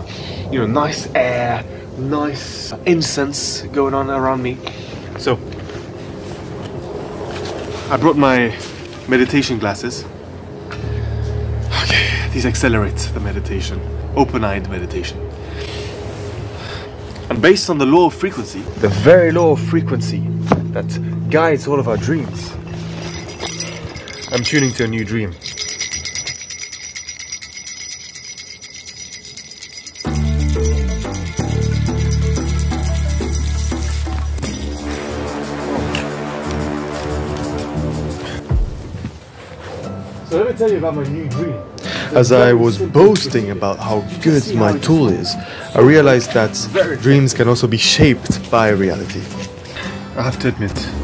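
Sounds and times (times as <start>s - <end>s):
jingle bells shaken: 22.6s - 35.8s.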